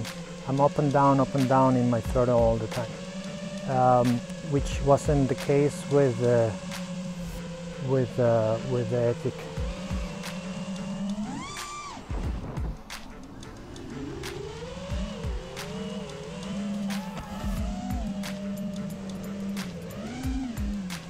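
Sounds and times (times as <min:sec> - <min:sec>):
background music with steady beat: 0:00.0 - 0:21.0
drone motors whining: 0:00.0 - 0:21.0.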